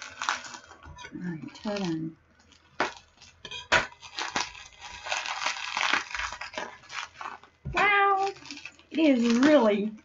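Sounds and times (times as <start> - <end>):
packaging tearing and crinkling: 0.0 - 10.0.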